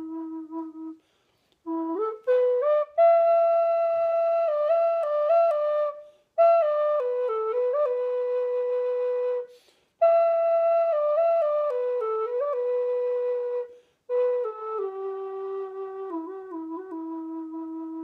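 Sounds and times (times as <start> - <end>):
wooden flute phrases: 0.0 - 18.0.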